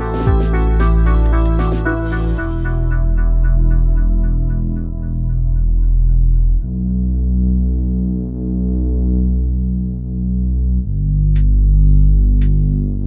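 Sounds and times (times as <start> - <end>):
synthesizer bass and pad chords: 0.0 - 13.0.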